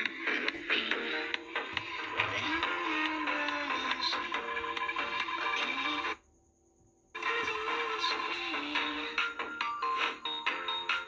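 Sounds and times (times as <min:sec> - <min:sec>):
pop music through small radio speaker: 0:00.0 - 0:06.2, 0:07.2 - 0:11.0.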